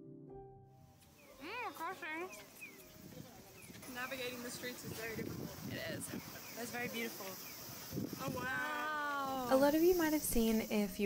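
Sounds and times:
street bustle: 1.0s - 11.0s
woman speaking: 3.8s - 7.4s, 8.6s - 11.0s.

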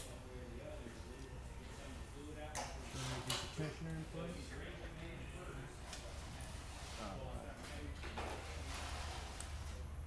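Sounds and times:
indistinct background voices: 0.0s - 9.9s.

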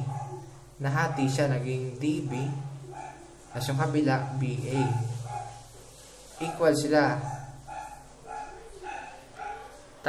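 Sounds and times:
voice: 3.6s - 5.1s.

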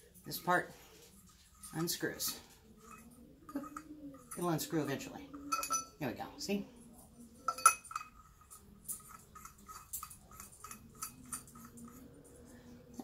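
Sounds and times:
sharp metal clink: 5.4s - 6.0s.

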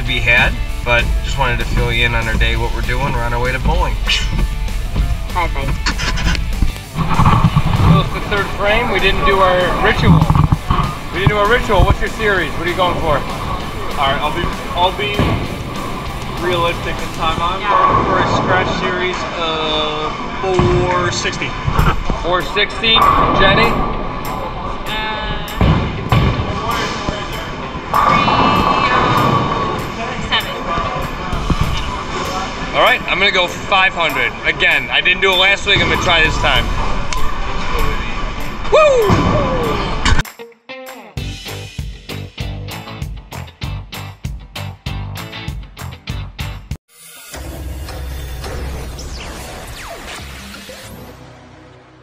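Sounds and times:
background pop music: 0.0s - 18.0s, 38.7s - 47.7s
swishing whooshes: 0.0s - 19.0s, 21.4s - 33.1s
deep bass rumble: 0.0s - 40.2s
crowd murmur: 3.9s - 20.4s, 21.0s - 35.0s.

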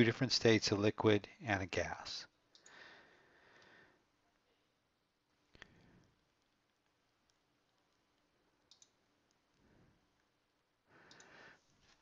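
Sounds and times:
faint soft noise: 1.7s - 12.0s
computer mouse clicks: 2.5s - 2.8s, 8.6s - 9.4s, 11.0s - 12.0s.

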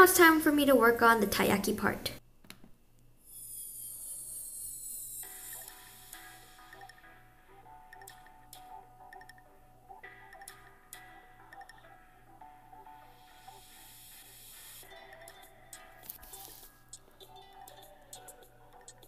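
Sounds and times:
soft background music: 5.2s - 19.0s.

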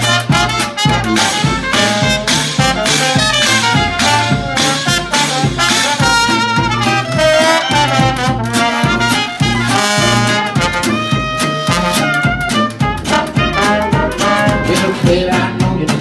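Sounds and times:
horns playing melody: 0.0s - 15.7s
jazz band playing: 0.0s - 16.0s
resonator guitar: 0.0s - 16.0s
tuba bass line: 0.0s - 16.0s.

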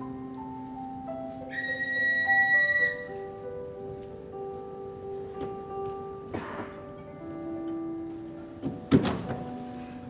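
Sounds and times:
digital piano slow notes: 0.0s - 10.0s
high whistle-like tone: 1.5s - 3.2s.

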